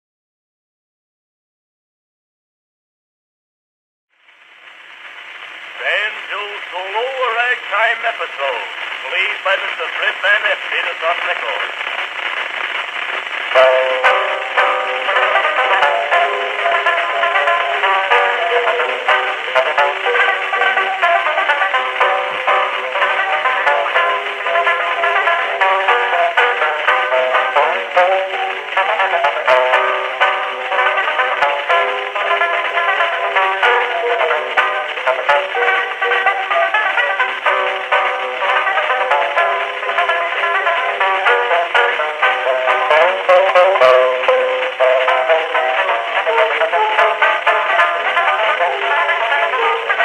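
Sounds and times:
record surface hiss: 4.1 - 50.0
spoken announcement on record: 5.8 - 11.9
banjo playing ragtime: 13.6 - 50.0.

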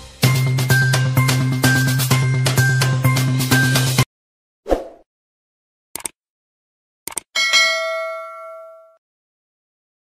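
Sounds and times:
bell-like ding: 7.4 - 9.0.

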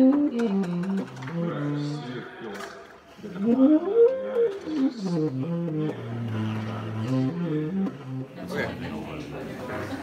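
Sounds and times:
tenor saxophone melody: 0.0 - 2.3, 3.2 - 8.5.

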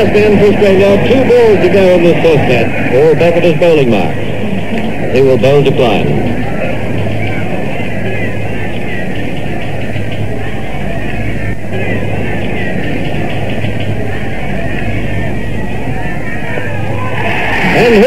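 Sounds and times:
muffled crowd hubbub: 0.0 - 18.0.

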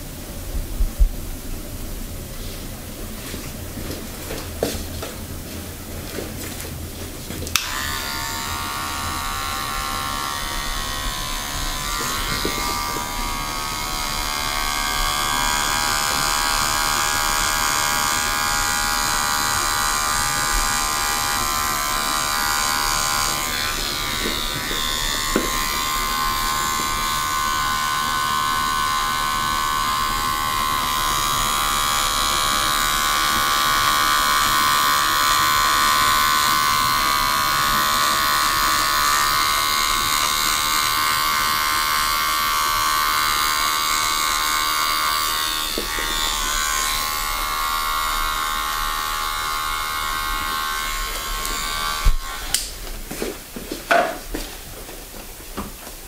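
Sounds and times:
electric hair clippers buzzing: 3.2 - 54.7
clippers click: 7.5 - 7.8.

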